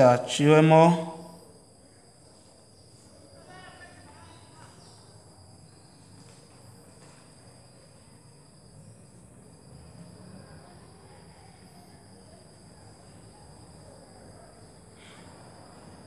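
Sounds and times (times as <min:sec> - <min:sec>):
crickets trilling: 0:00.0 - 0:16.0.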